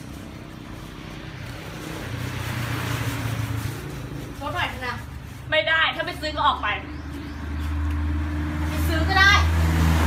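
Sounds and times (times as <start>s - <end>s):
motor vehicle passing: 0.0s - 10.0s.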